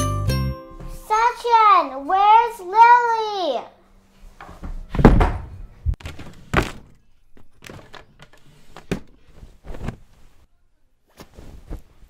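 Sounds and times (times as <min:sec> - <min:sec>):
dull thuds and knocks: 0:04.5 - 0:06.9.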